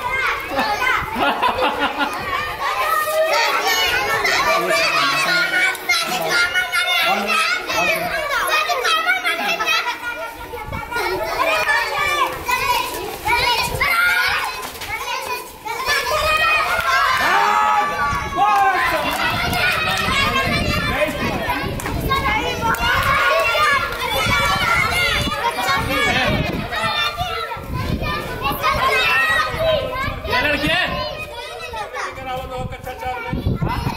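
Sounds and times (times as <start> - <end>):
children shouting at play: 0.0 - 33.9.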